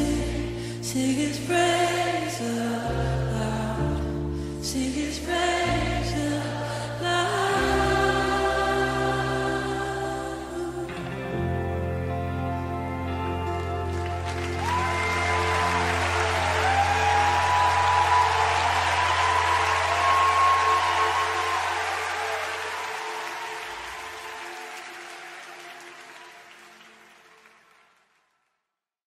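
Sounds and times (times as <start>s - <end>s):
audience applause: 13.4s - 28.4s.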